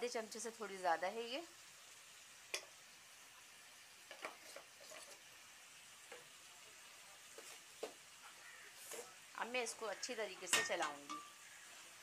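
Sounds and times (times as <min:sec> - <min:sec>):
meat and onions sizzling in oil: 0:00.0 - 0:12.0.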